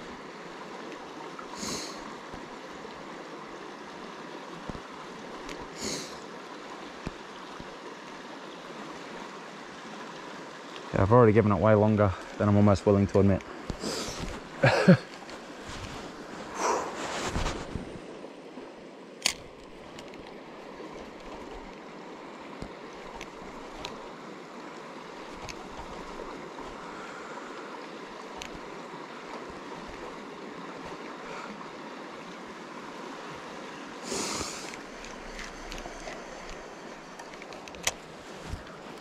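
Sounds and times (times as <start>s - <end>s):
river water running over rocks: 0.0s - 39.0s.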